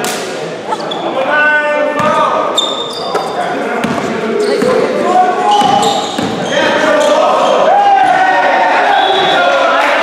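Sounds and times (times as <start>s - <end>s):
players calling out: 0.6s - 10.0s
basketball bouncing on wooden floor: 3.8s - 4.8s, 5.6s - 6.4s.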